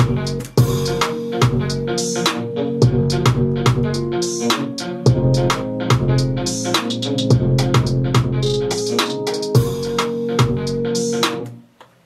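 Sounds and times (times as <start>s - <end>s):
trap reggae beat with guitar: 0.0s - 11.5s.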